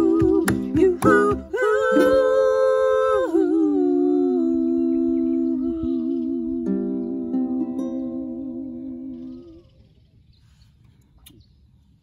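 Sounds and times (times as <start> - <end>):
woman and man singing in harmony: 0.0 - 9.7.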